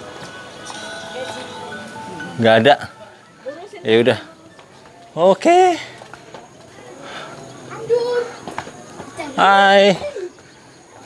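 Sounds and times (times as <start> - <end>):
faint voices: 0.0 - 11.0
footsteps on stone path: 0.0 - 11.0.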